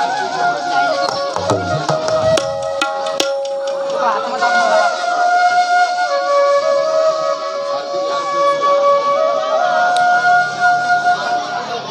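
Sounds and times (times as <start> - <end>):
bansuri flute melody: 0.0 - 11.9
keyboard accompaniment: 1.1 - 4.0.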